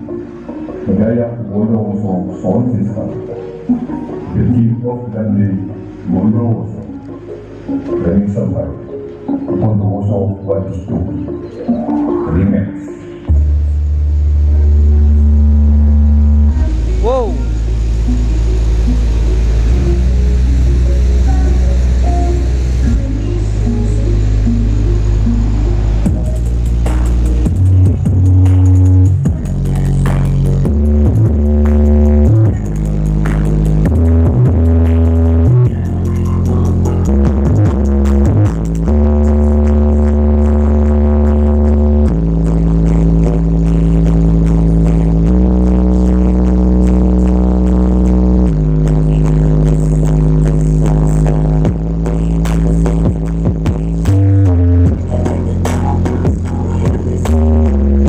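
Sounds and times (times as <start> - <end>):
bass-heavy electronic music: 0.0 - 58.0.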